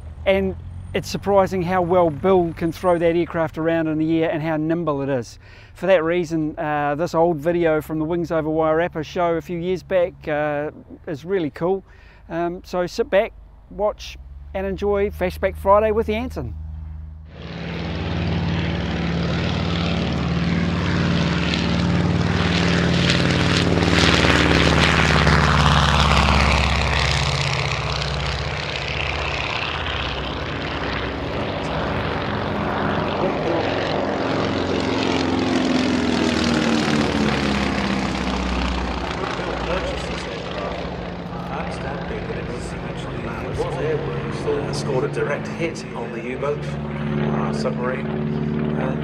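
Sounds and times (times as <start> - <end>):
propeller aircraft engines droning: 0.0 - 49.0.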